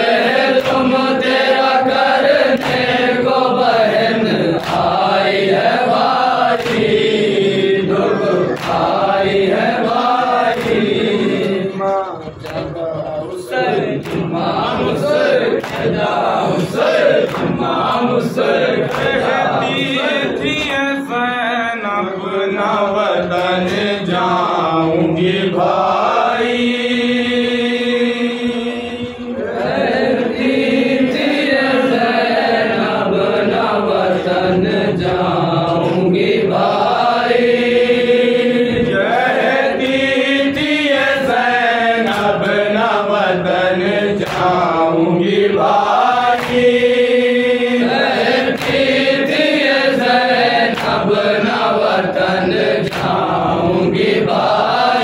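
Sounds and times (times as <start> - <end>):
young man chanting a lament: 6.1 - 29.6.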